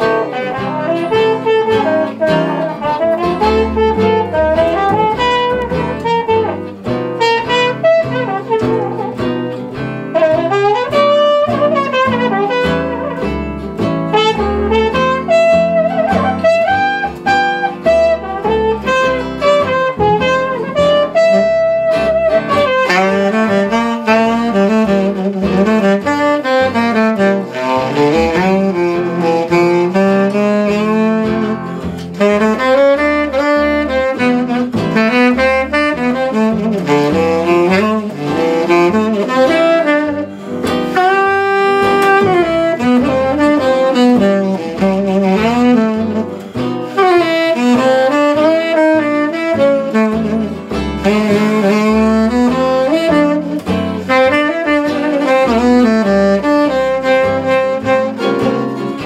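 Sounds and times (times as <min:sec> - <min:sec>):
muted trumpet melody: 0:00.0 - 0:09.5, 0:10.1 - 0:13.5, 0:14.1 - 0:59.0
guitar chords: 0:00.0 - 0:59.0
saxophone lead: 0:00.0 - 0:59.0
upright bass: 0:00.0 - 0:59.0.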